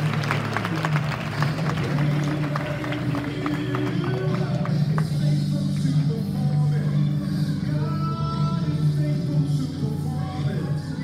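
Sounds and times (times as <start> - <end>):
audience applause: 0.0 - 5.1
background music with low notes: 0.0 - 11.0.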